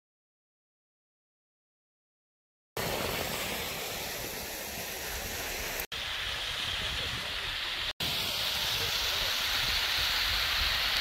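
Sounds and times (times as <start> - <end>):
waterfall rushing: 2.8 - 11.0.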